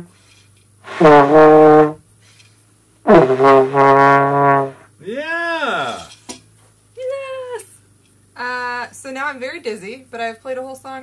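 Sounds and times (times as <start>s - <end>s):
person calling out: 5.0s - 6.1s.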